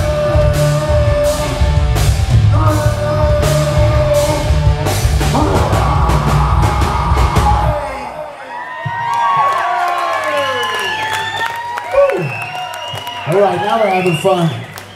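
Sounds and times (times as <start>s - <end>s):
live rock band playing: 0.0s - 8.0s
crowd whooping and yelling: 2.5s - 14.9s.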